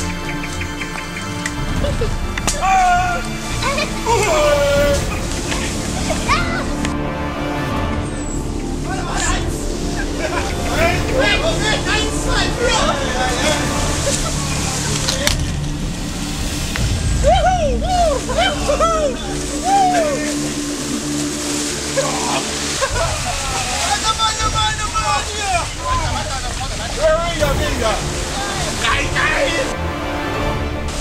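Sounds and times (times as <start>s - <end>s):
people calling out and chatting: 0.0s - 31.0s
small stream rushing: 0.0s - 31.0s
people shouting: 1.9s - 7.4s, 8.8s - 15.4s, 17.1s - 30.0s.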